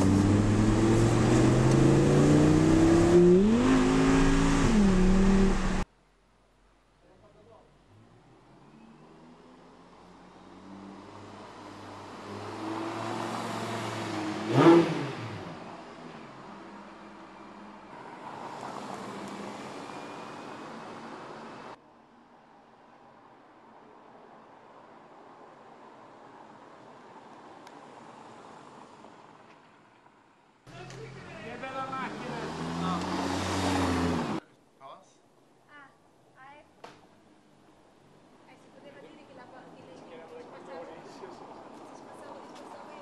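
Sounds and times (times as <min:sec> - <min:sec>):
sports car passing by: 0:00.0 - 0:05.8, 0:08.5 - 0:16.4, 0:31.0 - 0:34.4
car engine approaching: 0:00.0 - 0:05.9.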